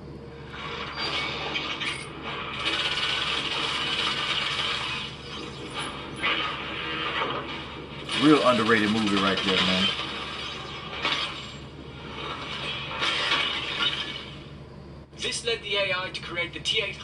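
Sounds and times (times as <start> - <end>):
mechanical battle clatter: 1.4 - 5.2, 8.1 - 11.2.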